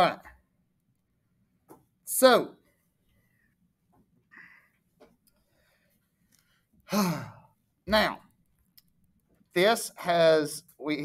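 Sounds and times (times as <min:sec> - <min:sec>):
man sighing: 0:06.9 - 0:07.5.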